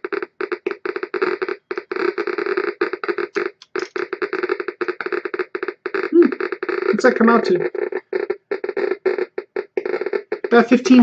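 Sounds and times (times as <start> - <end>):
geiger counter clicking rapidly: 0.0 - 11.0.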